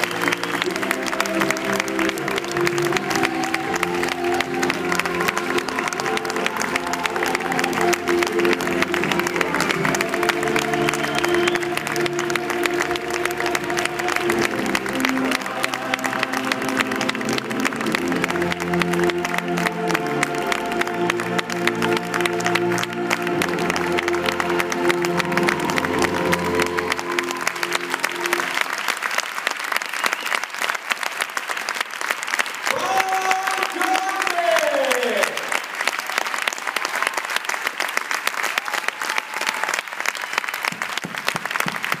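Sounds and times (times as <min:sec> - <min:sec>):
slow music with held chords: 0:00.0 - 0:28.6
audience applause: 0:00.0 - 0:42.0.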